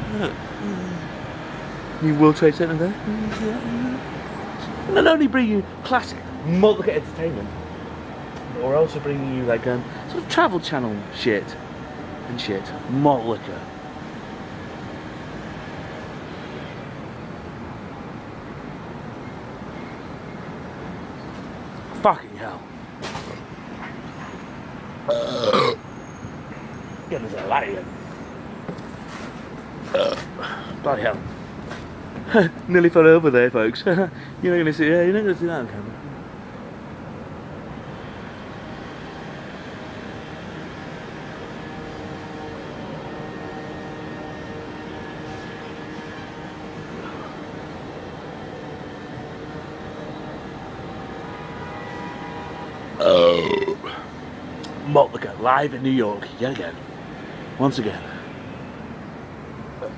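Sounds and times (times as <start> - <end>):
traffic and machinery hum: 0.0 - 59.9
man burping loudly: 25.1 - 25.8, 29.9 - 30.6, 53.0 - 54.1.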